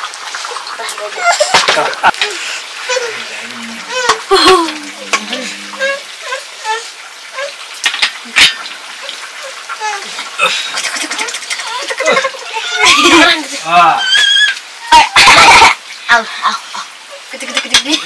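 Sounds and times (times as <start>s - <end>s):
clicks and knocks from fire and pots: 0.0s - 3.0s, 3.9s - 5.5s, 7.0s - 12.9s, 17.4s - 18.0s
fire hissing and sizzling: 0.0s - 14.9s
soft voices: 0.7s - 7.6s.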